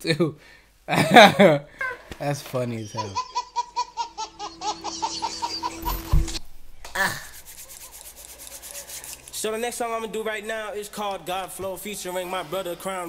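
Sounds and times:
baby laughing: 1.8s - 7.9s.

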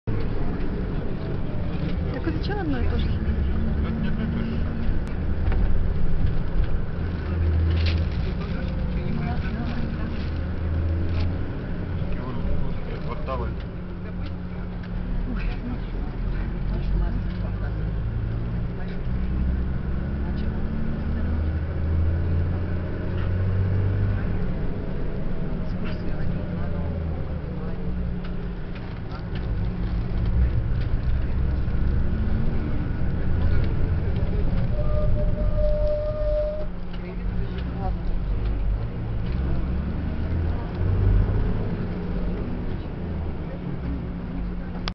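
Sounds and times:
car engine and road noise: 0.0s - 44.9s.

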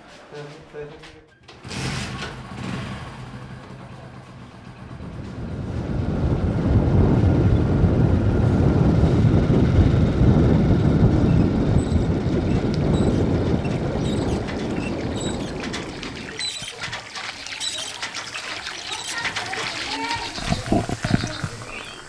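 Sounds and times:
vehicle road and wind noise: 1.5s - 22.0s.

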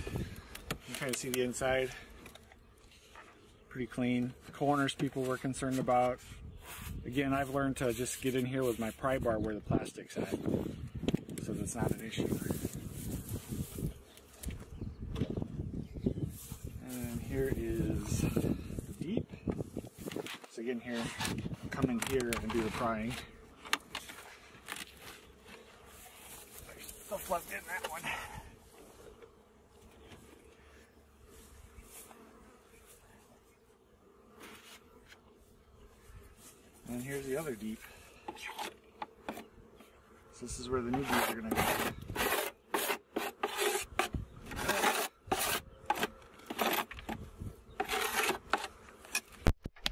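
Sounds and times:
pry bar scraping polystyrene: 41.0s - 47.2s, 47.8s - 49.2s.

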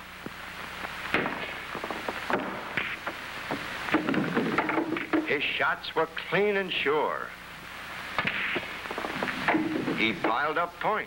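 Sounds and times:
low steady hum: 0.0s - 11.0s
pool balls clicking: 1.1s - 5.4s, 8.2s - 10.7s.

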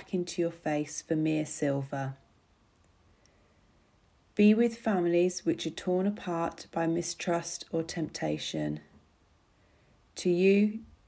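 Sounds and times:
person speaking a prayer: 0.0s - 2.2s, 4.4s - 8.9s, 10.2s - 10.8s.

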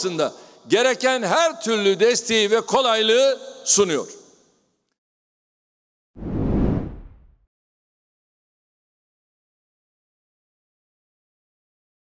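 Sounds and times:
deep whoosh: 6.2s - 7.4s.

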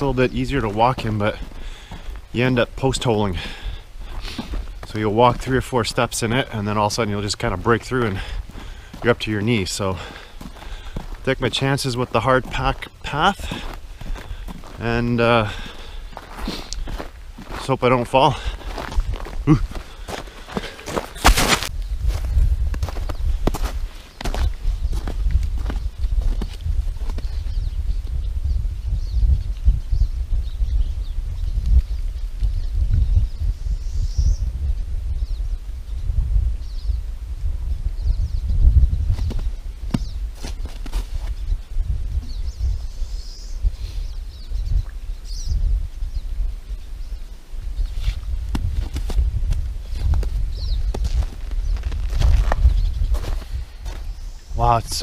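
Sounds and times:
footsteps on snow: 0.0s - 27.6s, 39.1s - 41.6s, 47.8s - 55.0s
wind rumble on microphone: 0.0s - 55.0s.

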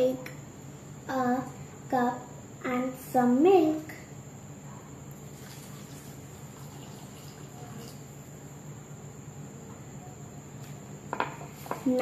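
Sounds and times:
low room hum: 0.0s - 12.0s
milk trickling into bowl: 5.2s - 8.1s.

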